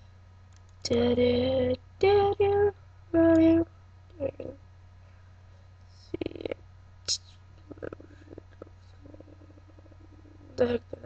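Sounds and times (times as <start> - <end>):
low buzzing murmur: 0.0 - 11.0
low electrical hum: 0.0 - 11.0.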